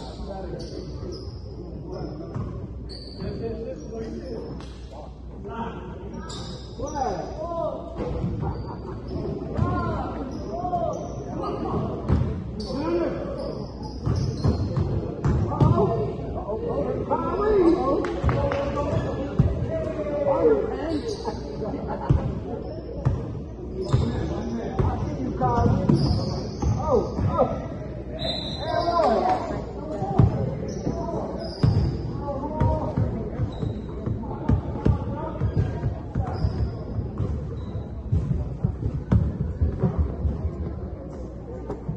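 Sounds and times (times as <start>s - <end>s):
high-pitched shoe squeaks: 2.9s - 3.4s.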